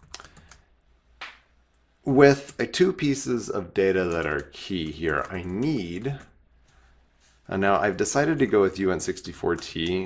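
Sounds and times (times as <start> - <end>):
faint keyboard keystrokes: 4.0 - 6.4.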